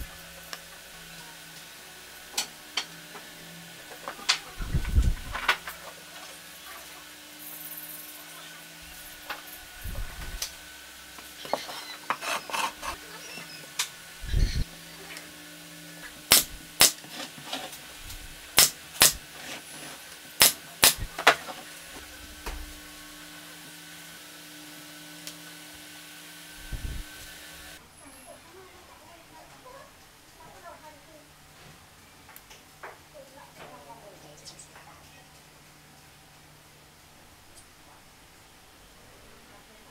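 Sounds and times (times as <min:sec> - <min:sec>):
wood scraping on workbench: 0:11.5 - 0:13.5.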